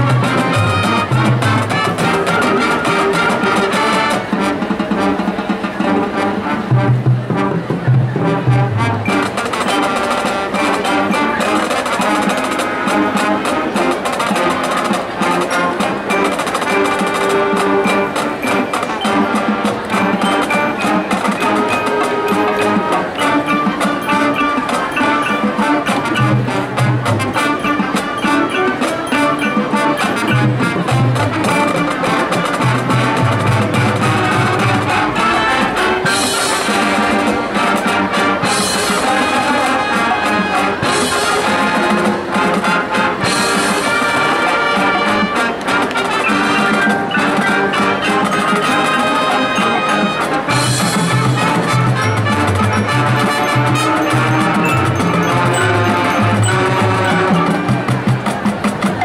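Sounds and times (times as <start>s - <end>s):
marching band playing: 0.0s - 59.0s.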